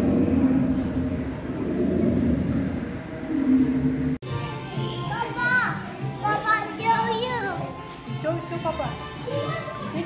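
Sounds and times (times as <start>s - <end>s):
indoor hall rumble: 0.0s - 4.2s
background music: 0.0s - 10.0s
children calling and squealing: 9.0s - 10.0s.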